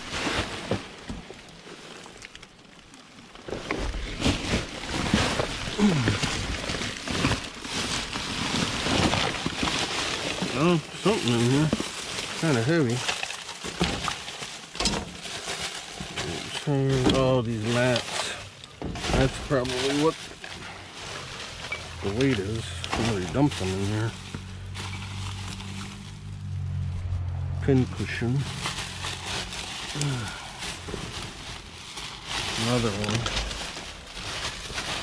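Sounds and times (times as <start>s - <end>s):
plastic bags rustling and crinkling: 0.0s - 35.0s
person's voice: 5.8s - 6.3s, 10.5s - 11.8s, 12.4s - 13.0s, 16.6s - 18.4s, 19.1s - 20.2s, 22.0s - 24.2s, 27.6s - 28.5s, 30.0s - 30.5s, 32.6s - 33.5s.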